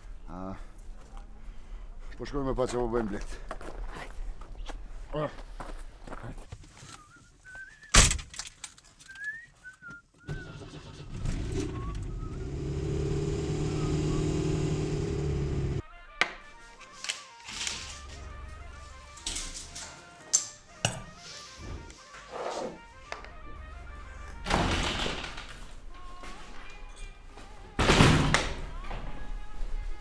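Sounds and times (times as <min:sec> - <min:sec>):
car engine running: 0:11.1 - 0:15.8.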